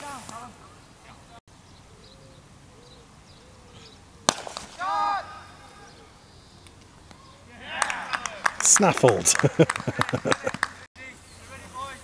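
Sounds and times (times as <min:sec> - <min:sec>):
cricket bat hitting ball: 0:04.3 - 0:04.9
player shouting: 0:04.8 - 0:06.0.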